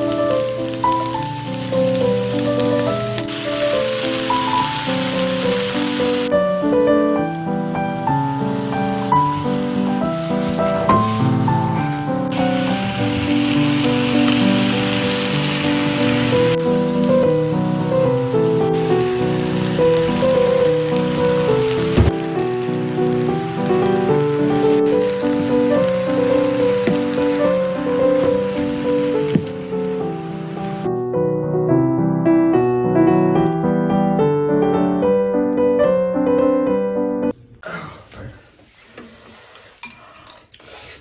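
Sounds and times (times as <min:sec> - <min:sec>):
food sizzling in a frying pan: 0:00.0 - 0:30.9
background piano music: 0:00.0 - 0:37.6.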